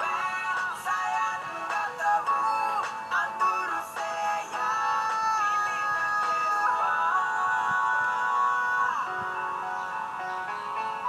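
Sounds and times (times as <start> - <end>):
auto-tuned vocal: 0.0 - 9.8
synth backing track: 0.0 - 11.0.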